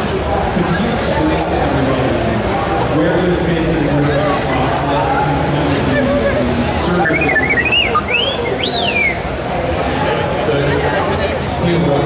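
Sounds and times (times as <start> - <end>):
electronic droid chirps: 6.9 - 9.2.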